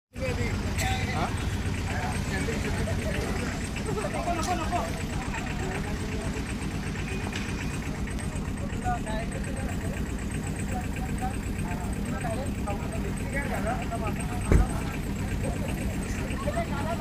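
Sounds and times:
engine idling: 0.1s - 17.0s
faint voices talking: 0.1s - 17.0s.

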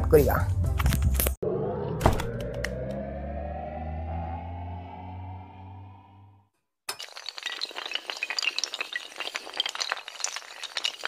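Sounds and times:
low droning tone: 1.4s - 6.4s
glass shattering: 6.9s - 11.0s.

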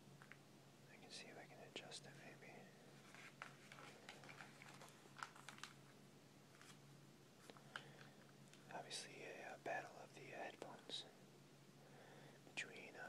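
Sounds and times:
magazine pages rustling: 2.9s - 6.8s, 7.4s - 8.7s.

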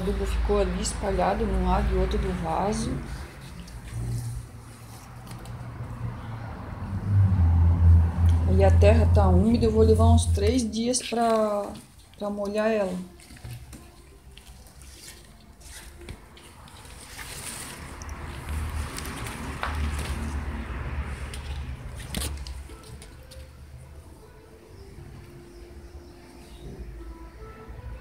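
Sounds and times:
leaves rustling: 11.0s - 23.4s.

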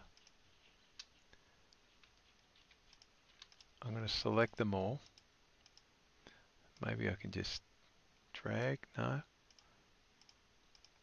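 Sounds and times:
computer mouse clicks: 0.0s - 0.4s, 1.0s - 3.8s, 4.5s - 5.9s, 9.5s - 11.0s.

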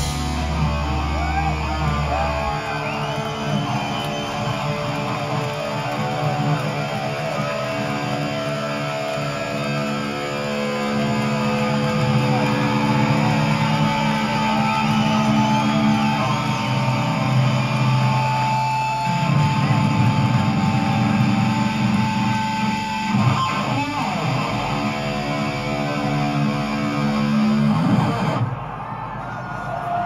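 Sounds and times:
heavy metal band playing: 0.0s - 28.4s.

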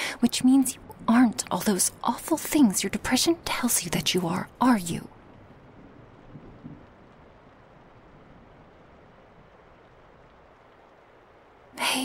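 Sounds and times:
faint background hiss: 0.0s - 12.0s.

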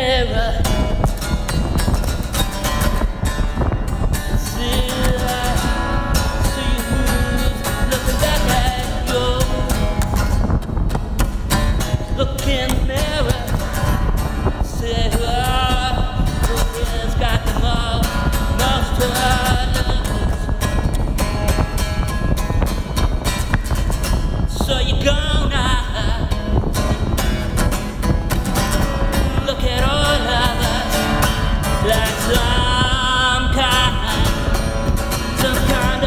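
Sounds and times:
man singing: 0.0s - 1.7s, 3.6s - 10.6s, 11.8s - 21.1s, 24.3s - 27.1s, 28.6s - 36.0s
acoustic guitar strumming: 0.0s - 36.0s.

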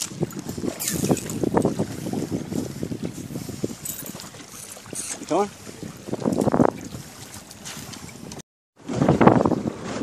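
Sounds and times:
water rushing along hull: 0.0s - 10.0s
wind buffeting microphone: 0.0s - 10.0s.

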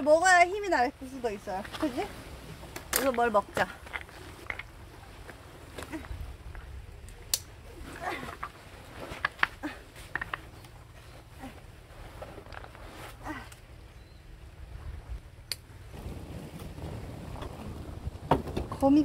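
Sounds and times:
rucksack clicks and rustles: 2.6s - 13.7s.

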